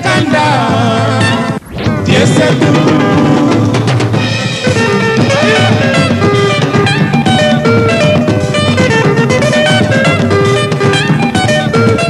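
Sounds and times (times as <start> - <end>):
man singing lead: 0.0 - 4.2, 4.9 - 6.6
drums: 0.0 - 12.0
guitars: 0.0 - 12.0
rumba band music: 0.0 - 12.0.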